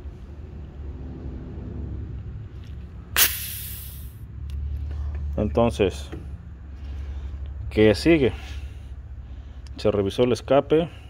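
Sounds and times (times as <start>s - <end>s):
steady low hum: 0.0s - 11.0s
pressure valve hissing: 3.2s - 4.2s.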